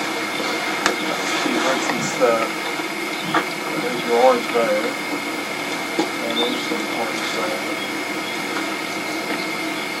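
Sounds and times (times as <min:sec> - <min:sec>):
high whine: 0:00.0 - 0:10.0
hiss and hum: 0:00.0 - 0:10.0.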